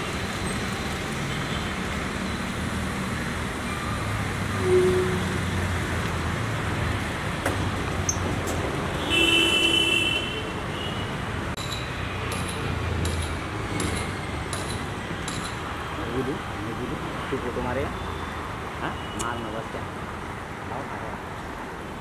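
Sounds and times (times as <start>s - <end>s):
vehicle engines and road noise: 0.0s - 22.0s.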